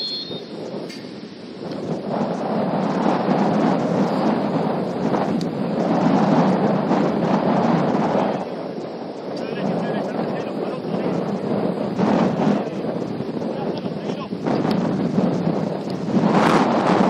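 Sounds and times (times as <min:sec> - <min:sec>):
whistle blast: 0:00.0 - 0:00.8
wind buffeting microphone: 0:00.0 - 0:17.0.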